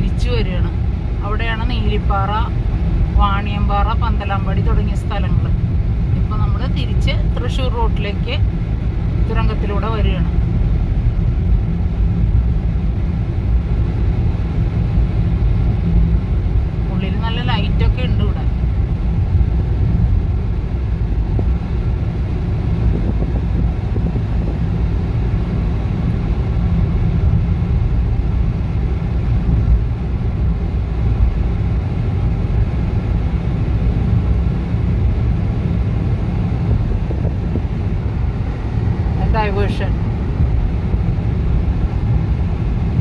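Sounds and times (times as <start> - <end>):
car engine and tyre drone: 0.0 - 43.0.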